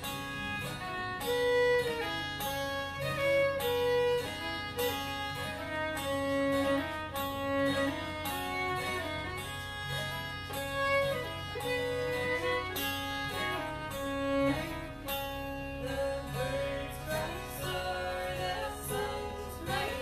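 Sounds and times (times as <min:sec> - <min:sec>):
bowed fiddle: 0:00.0 - 0:20.0
strummed acoustic guitar: 0:00.0 - 0:20.0.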